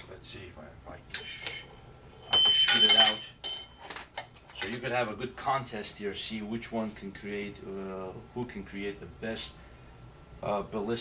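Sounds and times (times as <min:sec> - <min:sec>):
metal ring clinking and ringing: 0:01.2 - 0:03.9.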